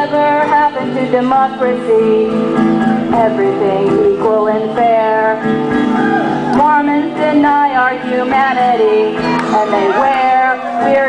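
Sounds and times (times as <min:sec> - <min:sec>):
woman singing: 0:00.0 - 0:05.6, 0:06.5 - 0:11.0
strummed acoustic guitar: 0:00.0 - 0:11.0.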